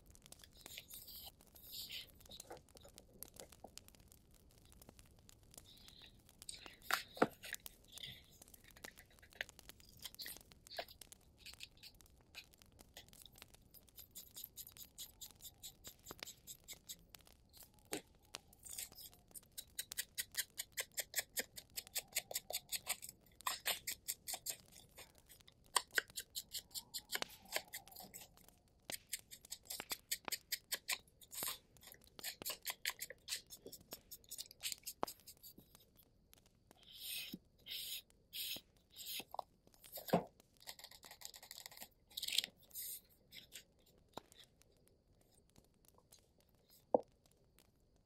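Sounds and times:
small clicks of craft supplies: 0:00.0 - 0:48.0
pen scratching on paper: 0:36.8 - 0:39.4
paper rubbing: 0:36.8 - 0:43.6.

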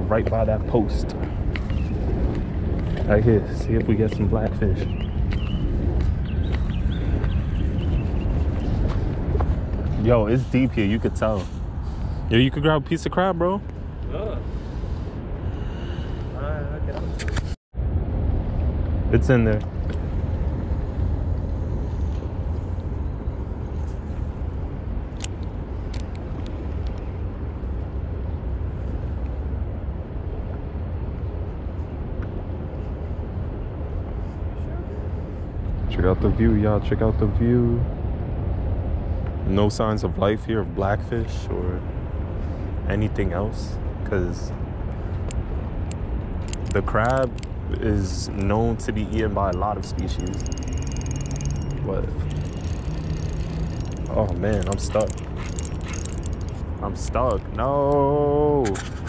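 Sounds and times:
wind buffeting microphone: 0:00.0 - 0:41.0, 0:41.8 - 0:59.0
low outdoor rumble: 0:00.0 - 0:59.0.

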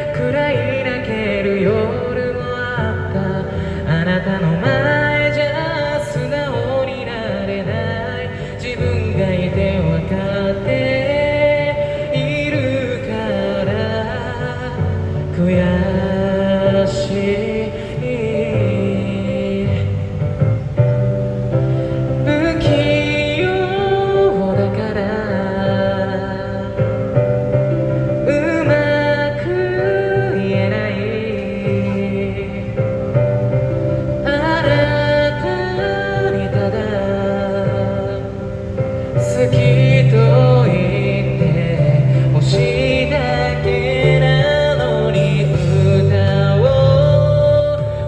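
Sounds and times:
man singing into microphone: 0:00.0 - 0:48.0.

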